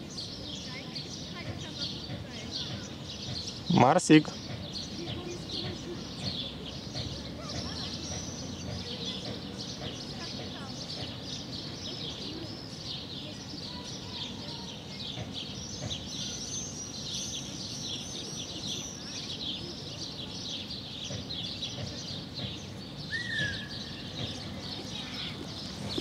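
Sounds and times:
low outdoor background hum: 0.0 - 26.0
small birds chirping: 0.0 - 26.0
low falling bird call: 23.0 - 26.0.

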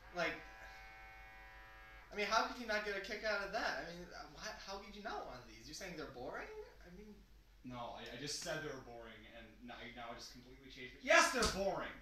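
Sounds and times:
man speaking: 2.1 - 12.0.

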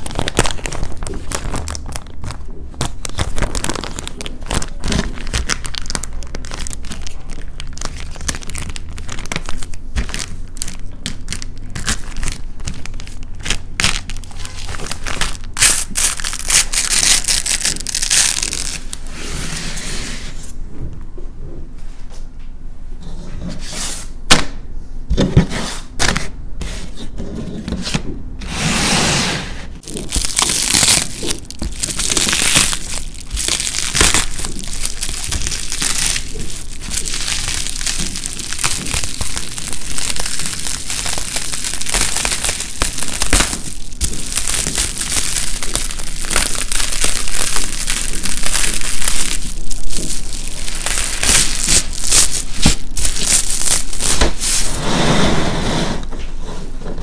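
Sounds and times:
paint skin and bubble wrap crinkling: 0.0 - 19.3, 29.8 - 54.8.

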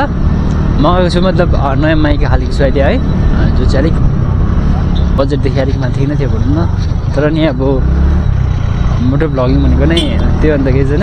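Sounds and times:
motorcycle engine rumble: 0.0 - 11.0.

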